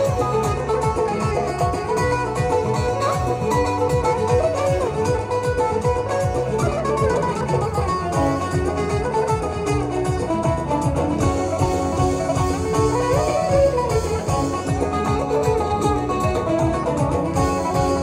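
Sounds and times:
keyboard: 0.0 - 18.0
plucked lute melody: 0.0 - 18.0
steady low drum beat: 0.0 - 18.0.

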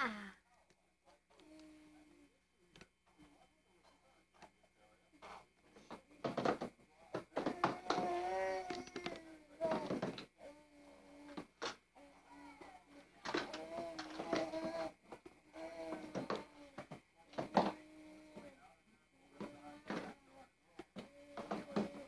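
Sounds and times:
baby vocalizing: 12.0 - 16.8.

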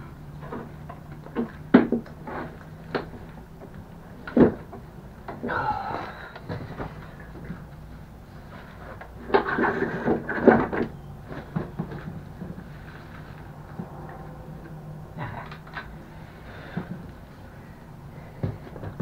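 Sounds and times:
battery parts clunking and scraping: 8.5 - 14.2.

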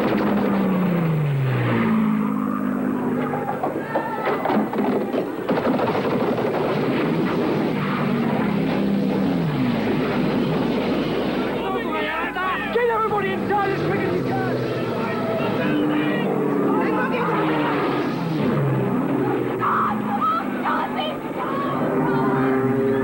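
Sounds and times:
sharp cracks: 0.0 - 11.7
people shouting: 2.5 - 4.6, 11.6 - 23.0
propeller warplane passing overhead: 7.5 - 23.0.

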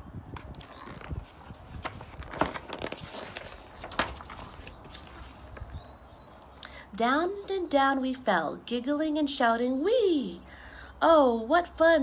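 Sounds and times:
book pages rustling: 0.4 - 6.0.

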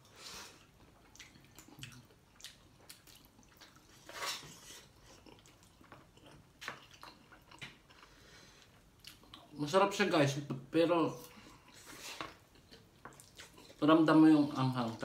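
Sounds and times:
person chewing noodles: 0.0 - 9.6, 11.2 - 13.8.

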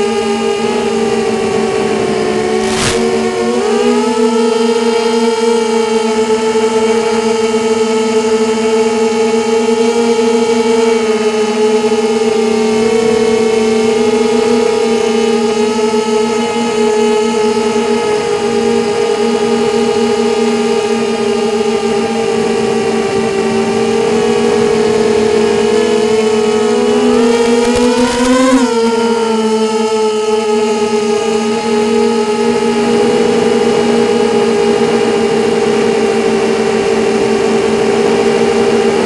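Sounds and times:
drone motors buzzing whine: 0.0 - 39.0.

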